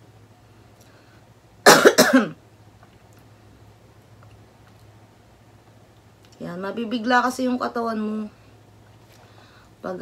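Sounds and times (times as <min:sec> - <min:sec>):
woman coughing: 0:01.6 - 0:02.4.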